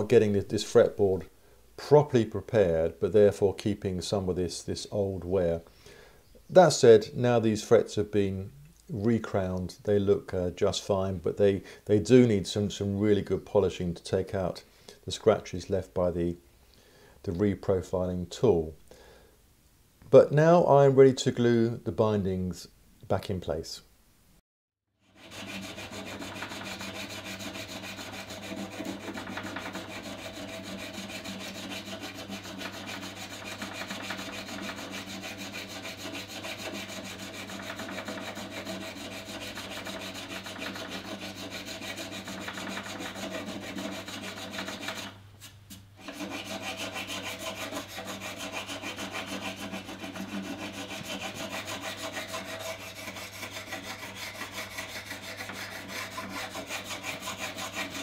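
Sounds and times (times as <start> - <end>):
tool scraping wood: 25.0 - 58.0.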